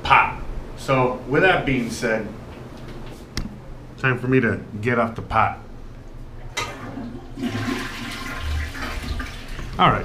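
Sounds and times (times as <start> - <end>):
toilet flushing: 6.6 - 10.0.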